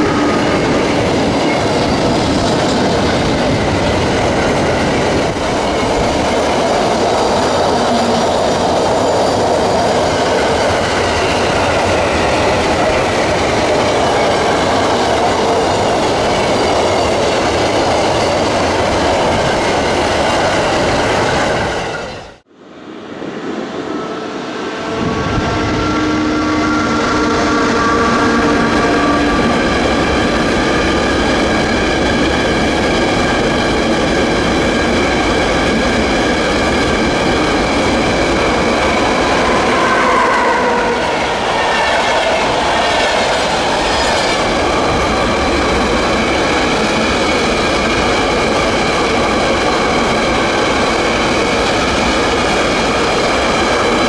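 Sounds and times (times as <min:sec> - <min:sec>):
freight train humming past: 0:00.0 - 0:54.0
freight train rumbling past: 0:00.0 - 0:54.0.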